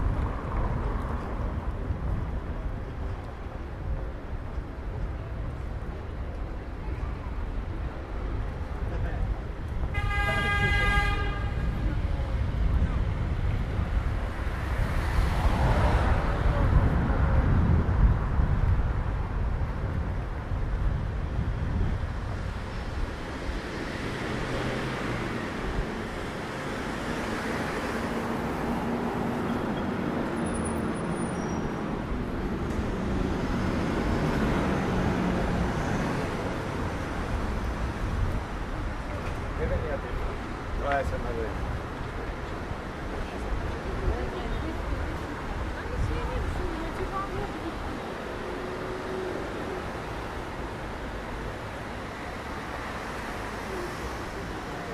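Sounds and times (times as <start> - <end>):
city street traffic hum: 0.0 - 54.9
passing vehicle rumble: 7.6 - 54.9
car horn honk: 9.9 - 11.7
passers-by talking: 34.3 - 54.9.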